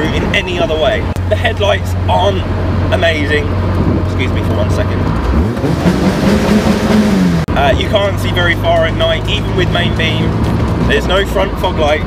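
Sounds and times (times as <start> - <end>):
car engine accelerating: 0.0 - 12.0.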